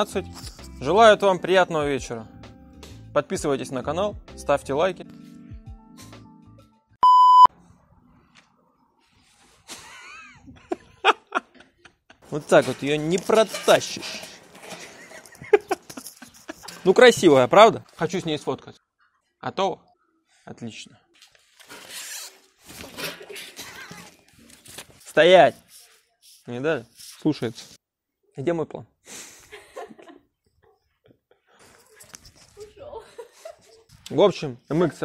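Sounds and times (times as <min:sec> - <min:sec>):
electronic beep: 0:07.0 - 0:07.5.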